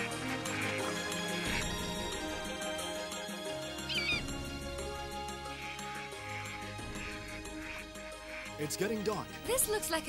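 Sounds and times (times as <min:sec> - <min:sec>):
orchestral music: 0:00.0 - 0:10.0
soft bird calls: 0:03.5 - 0:08.6
bird of prey cry: 0:03.8 - 0:04.3.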